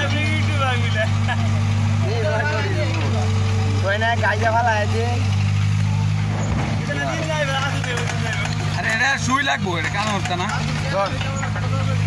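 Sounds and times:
excavator diesel engine drone: 0:00.0 - 0:12.0
people's voices: 0:00.0 - 0:12.0.

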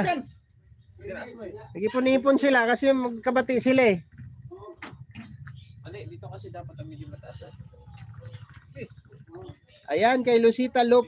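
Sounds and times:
crickets chirring: 0:00.0 - 0:11.0
faint voices: 0:03.8 - 0:11.0.

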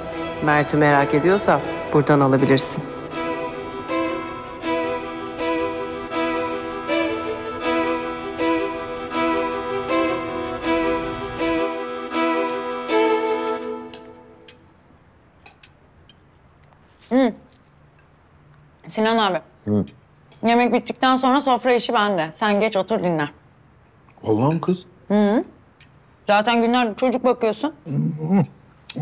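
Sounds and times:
dramatic string score: 0:00.0 - 0:14.6.

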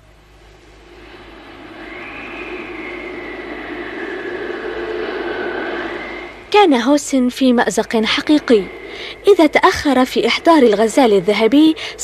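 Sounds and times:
noisy hiss: 0:00.0 - 0:12.0
sustained drone with tones: 0:00.0 - 0:12.0.

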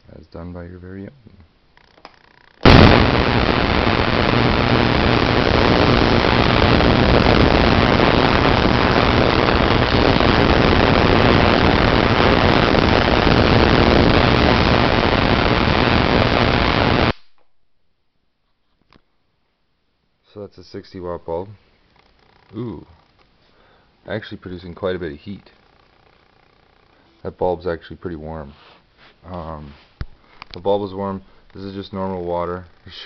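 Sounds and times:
spark gap crackling buzz: 0:02.6 - 0:17.4.

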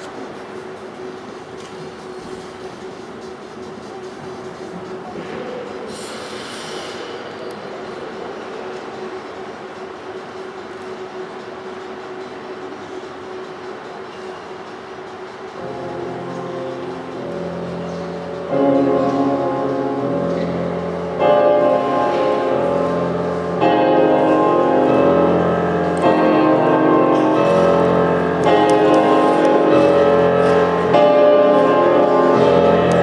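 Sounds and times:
short hiss: 0:05.9 - 0:07.1
skating program music: 0:11.8 - 0:33.0.

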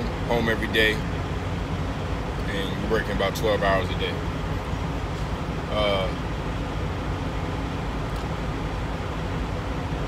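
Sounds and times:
truck engine rumble: 0:00.0 - 0:10.0.

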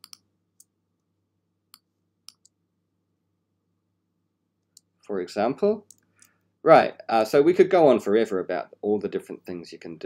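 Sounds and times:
computer mouse clicking: 0:00.0 - 0:00.7, 0:01.7 - 0:02.6.

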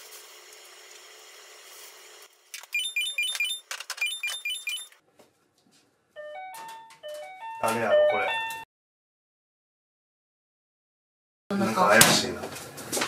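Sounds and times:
toaster oven beeping tune: 0:02.8 - 0:05.0.

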